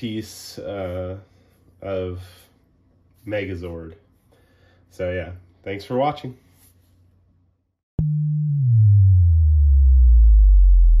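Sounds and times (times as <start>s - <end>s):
sub-bass drop tone: 8.0s - 11.0s.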